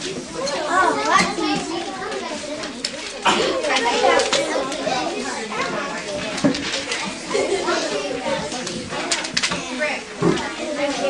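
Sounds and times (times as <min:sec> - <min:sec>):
children talking: 0:00.0 - 0:11.0.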